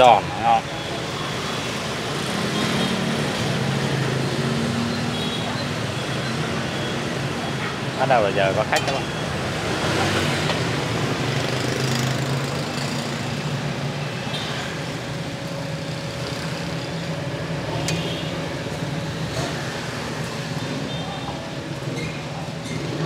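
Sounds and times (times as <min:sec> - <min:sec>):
passing motorbikes and cars: 0:00.0 - 0:23.0.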